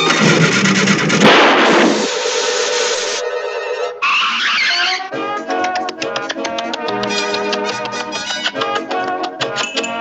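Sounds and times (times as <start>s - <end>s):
cartoon crash sound effect: 1.2s - 2.2s.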